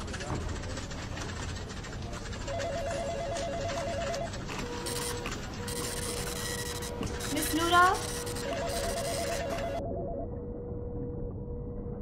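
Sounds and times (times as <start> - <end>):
telephone ringer trilling: 2.5 - 9.8.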